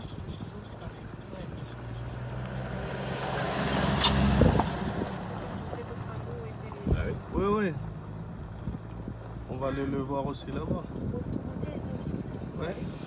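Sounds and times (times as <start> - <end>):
sharp click: 4.0 - 4.8.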